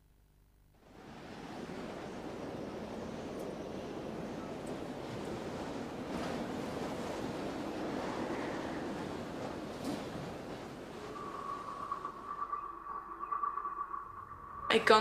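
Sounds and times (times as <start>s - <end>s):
steady rushing noise: 0.8s - 15.0s.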